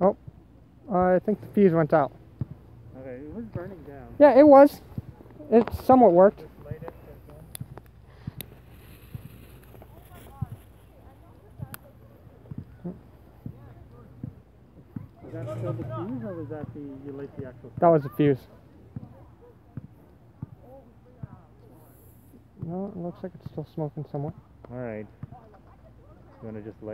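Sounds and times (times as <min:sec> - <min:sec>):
faint murmured voices: 0:02.3 - 0:23.6.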